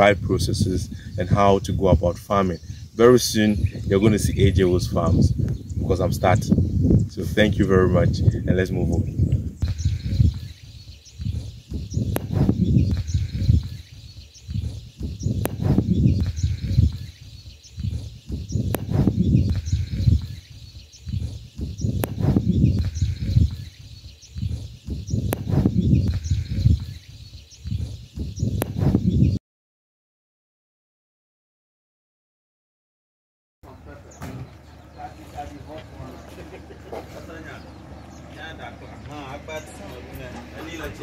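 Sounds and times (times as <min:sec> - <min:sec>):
wind on microphone: 0:00.0 - 0:29.4
microphone handling noise: 0:03.5 - 0:29.4.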